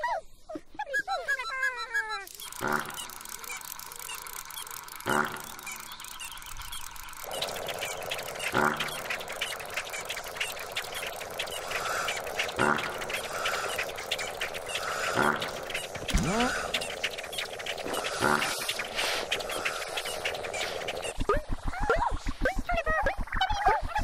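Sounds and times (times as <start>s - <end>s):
birds chirping: 0.0s - 22.4s
steady hum: 2.3s - 23.3s.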